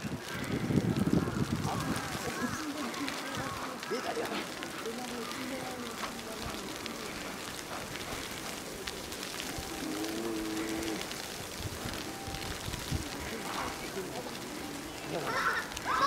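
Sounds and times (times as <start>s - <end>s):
steady hiss: 0.0s - 16.0s
people talking indistinctly: 1.2s - 9.0s, 13.0s - 16.0s.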